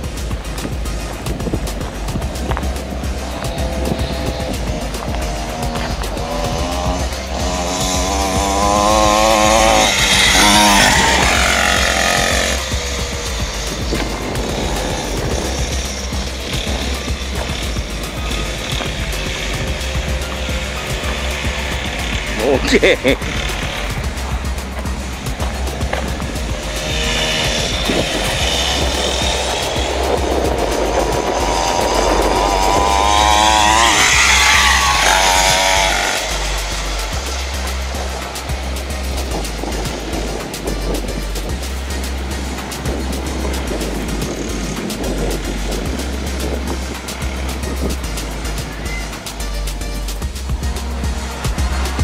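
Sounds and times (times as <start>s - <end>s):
dirt bike engine revving: 0.0s - 52.0s
electronic music with steady beat: 0.0s - 52.0s.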